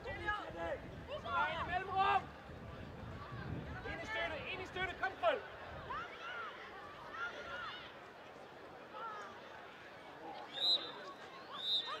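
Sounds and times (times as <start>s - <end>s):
referee's whistle blasts: 10.6s - 12.0s.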